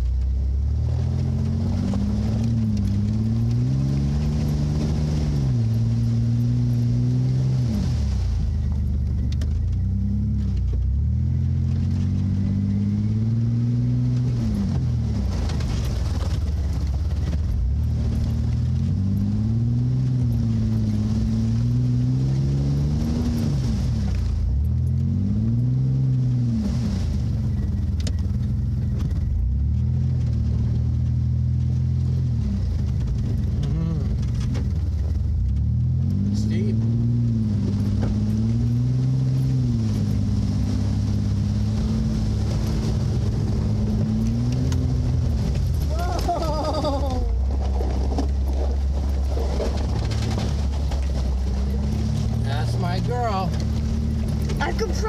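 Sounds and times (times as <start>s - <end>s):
engine revving through water: 0.0s - 55.0s.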